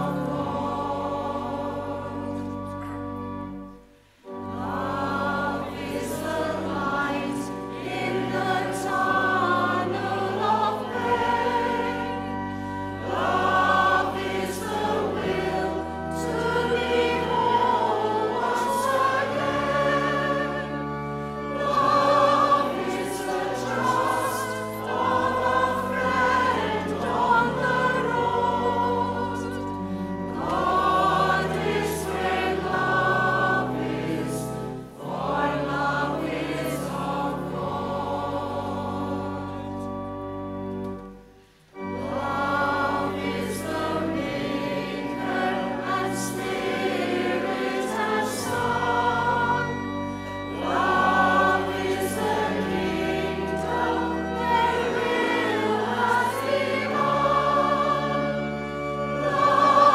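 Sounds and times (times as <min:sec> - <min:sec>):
congregation singing a hymn: 0:00.0 - 0:59.9.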